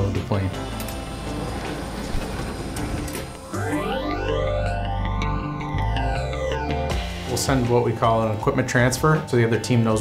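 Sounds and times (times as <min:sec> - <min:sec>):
machinery rumble: 0:00.4 - 0:06.0.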